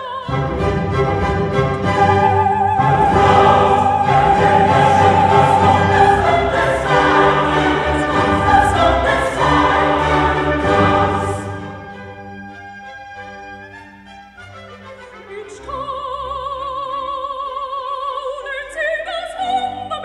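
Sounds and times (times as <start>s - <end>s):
choir singing: 0.0s - 12.5s
orchestra playing: 0.2s - 16.3s.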